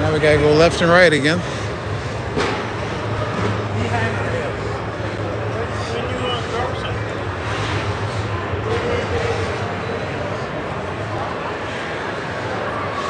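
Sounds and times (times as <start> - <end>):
chatter of people: 0.0 - 13.0
steady low hum: 0.0 - 13.0.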